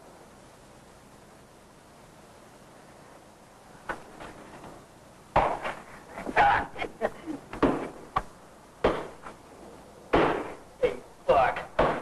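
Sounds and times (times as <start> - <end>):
punches landing with heavy thuds: 7.6 - 9.3, 10.1 - 10.6, 11.4 - 12.0.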